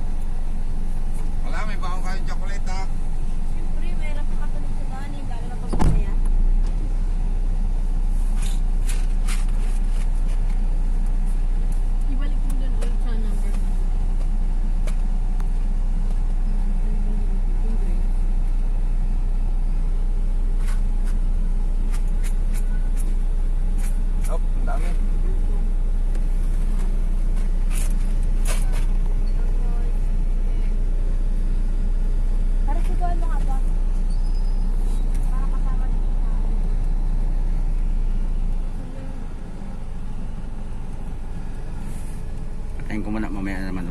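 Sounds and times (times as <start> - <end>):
vehicle rumble from inside cabin: 0.0 - 43.9
single knock: 5.7 - 6.2.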